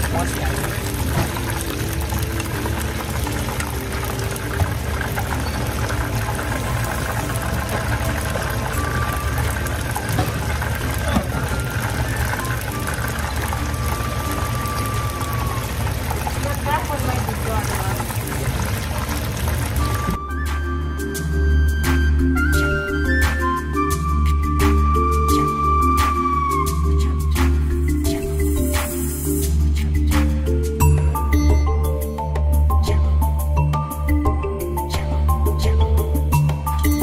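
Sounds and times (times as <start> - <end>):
fish deep-frying in hot oil: 0.0 - 30.2.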